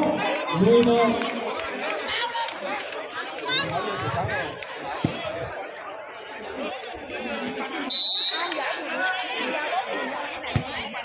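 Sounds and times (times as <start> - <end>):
chatter of spectators: 0.0 - 11.0.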